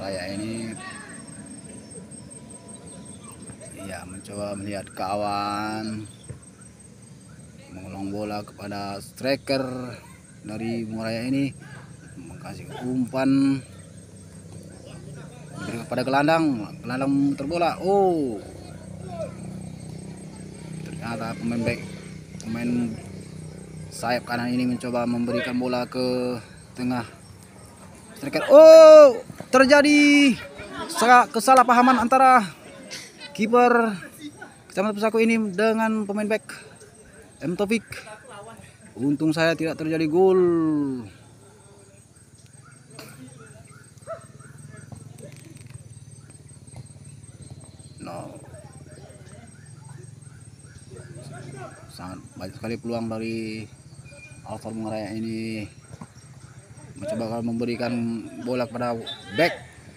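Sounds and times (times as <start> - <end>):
distant voices: 0.0 - 59.9
faint open-air ambience: 0.0 - 59.9.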